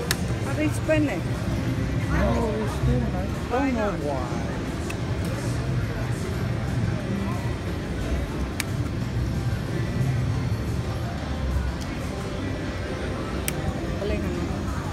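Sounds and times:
casino chatter: 0.0s - 14.9s.

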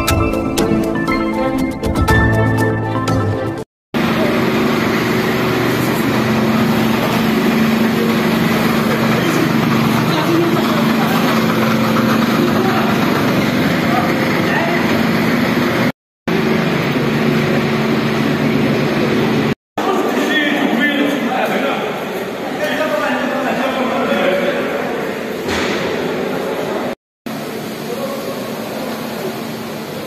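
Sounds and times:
fire engine running: 4.0s - 20.2s.

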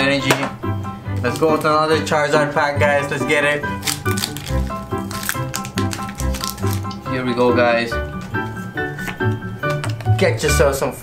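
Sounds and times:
background music with beat: 0.0s - 10.8s
foil pack crinkling and tearing: 1.2s - 1.8s, 3.8s - 7.0s.

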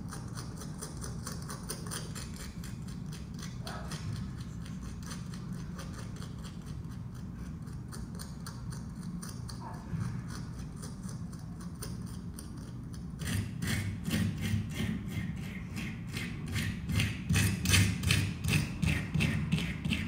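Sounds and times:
hand tool scraping clay: 0.0s - 20.0s
low room rumble: 0.0s - 20.0s.

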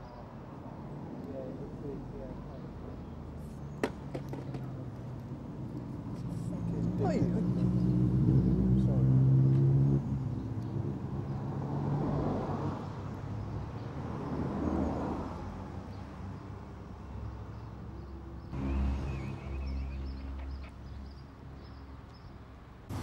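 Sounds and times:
outdoor street ambience: 0.0s - 23.0s
vehicle engine humming: 18.4s - 21.9s.

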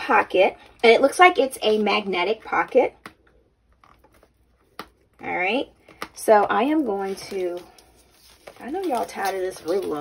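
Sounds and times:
handling of leather folio: 5.9s - 10.0s.

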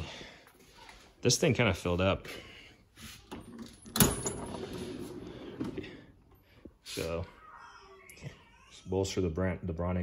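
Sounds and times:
drawer rolling on metal slides: 4.0s - 6.0s.

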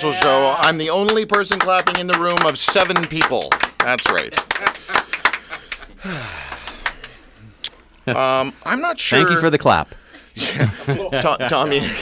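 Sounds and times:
person clapping: 0.1s - 7.8s
breathy sighing vocal: 5.6s - 7.7s.

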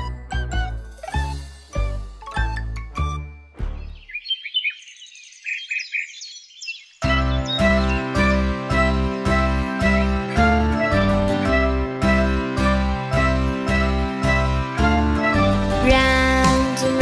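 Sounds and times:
children's song music: 0.0s - 4.1s, 6.9s - 17.0s.

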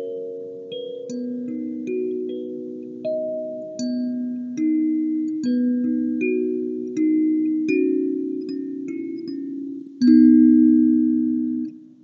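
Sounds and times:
kalimba melody: 0.0s - 12.0s.

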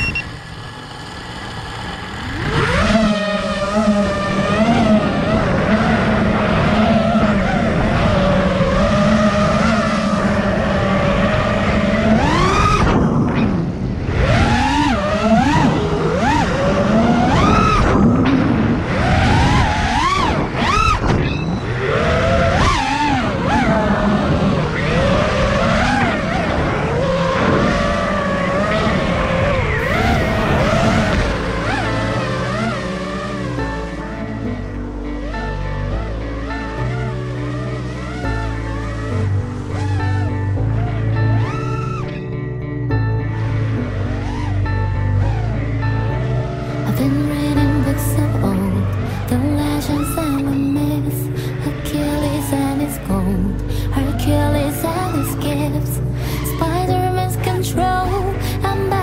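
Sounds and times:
drone motors whining: 0.0s - 59.0s.

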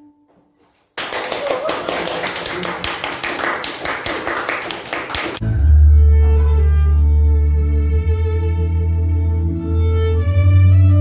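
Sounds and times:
small audience applauding: 0.7s - 5.4s
music with deep bass: 5.4s - 11.0s.

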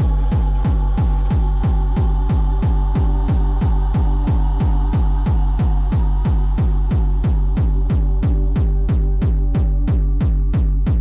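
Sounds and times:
deep kick drum: 0.0s - 11.0s.

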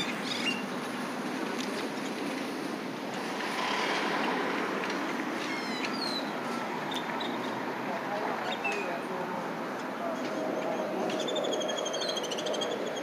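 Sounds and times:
traffic hiss: 0.0s - 12.9s.

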